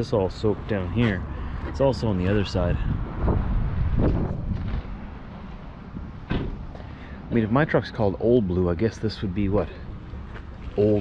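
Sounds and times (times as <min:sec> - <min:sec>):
wind buffeting microphone: 0:00.6 - 0:06.7.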